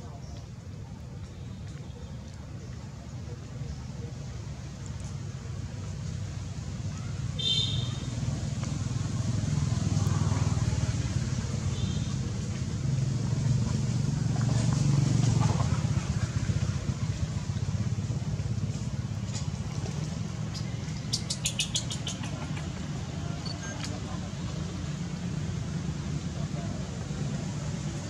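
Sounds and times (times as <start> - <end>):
motor engine rumble: 0.0 - 28.0
faint high chirp: 23.3 - 24.0.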